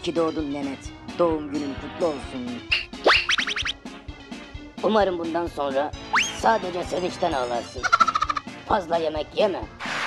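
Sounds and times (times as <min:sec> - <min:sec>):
rapid warbling trill: 0:02.7 - 0:03.8
cartoon puppet voice speaking: 0:04.9 - 0:09.7.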